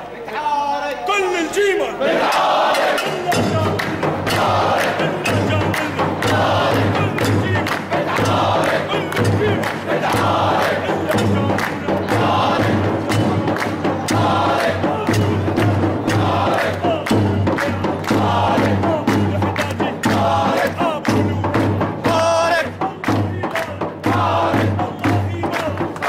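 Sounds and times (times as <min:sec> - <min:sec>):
crowd of men chanting: 0:00.2 - 0:26.0
handclaps: 0:02.8 - 0:26.0.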